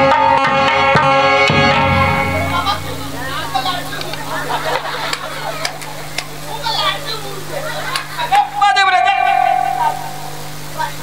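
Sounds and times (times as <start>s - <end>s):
steady low hum: 1.5s - 11.0s.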